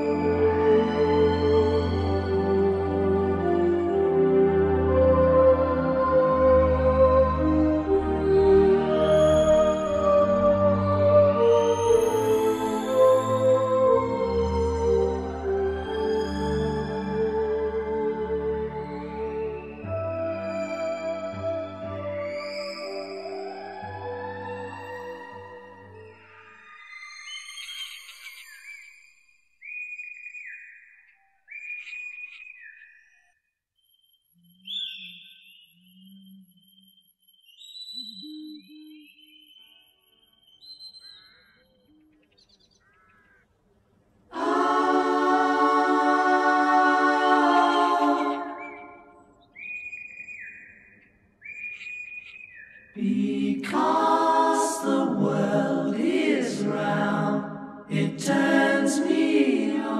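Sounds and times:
group singing a cappella: 0.0 - 19.8, 23.6 - 26.0, 44.3 - 49.2, 53.0 - 59.9
long whistled notes: 0.0 - 30.7, 44.4 - 50.8.

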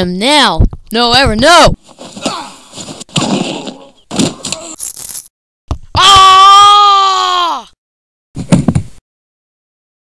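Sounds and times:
fight hits and crashes: 2.0 - 4.8.

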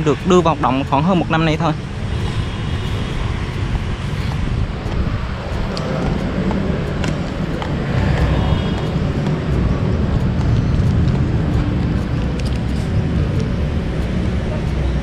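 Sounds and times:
city traffic rumble: 0.0 - 15.0.

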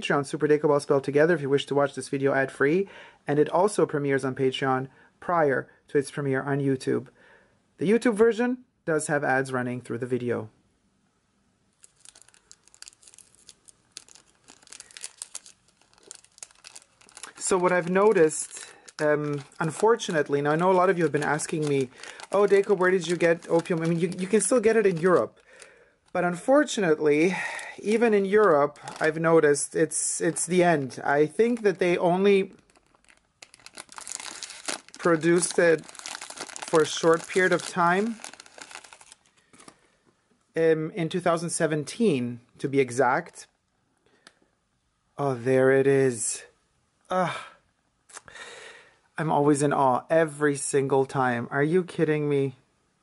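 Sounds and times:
cellophane crinkling and tearing: 11.8 - 39.9.

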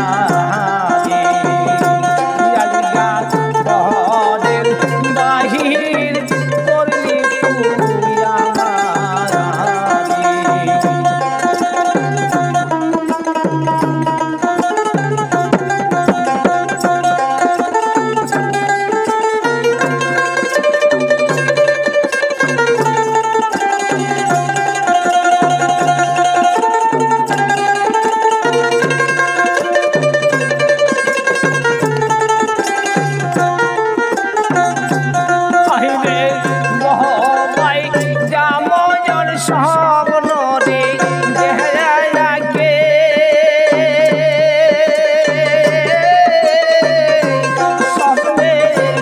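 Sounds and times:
low drum beat: 0.0 - 49.0
plucked string melody: 0.0 - 49.0.

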